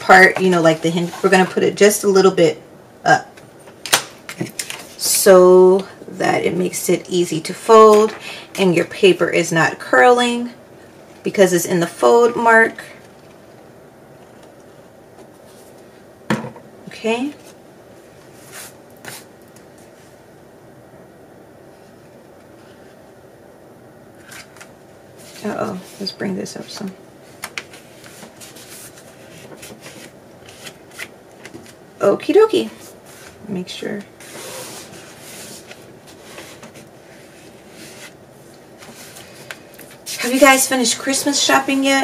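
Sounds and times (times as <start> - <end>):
paper rustling: 24.2 - 31.8.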